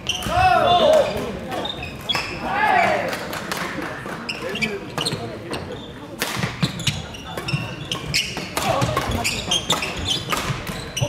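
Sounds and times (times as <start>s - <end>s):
chatter of many voices: 0.0s - 11.0s
shoes squeaking on wooden floor: 4.3s - 11.0s
racket hitting shuttlecock: 6.2s - 10.8s.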